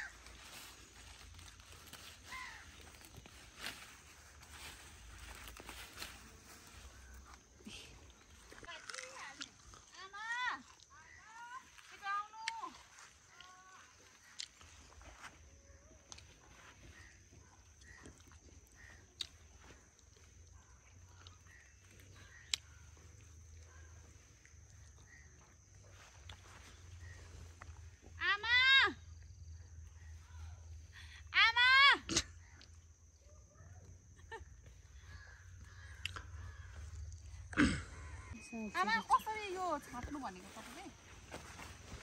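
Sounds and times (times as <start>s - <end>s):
bird calling: 0.0s - 8.6s, 34.2s - 42.0s.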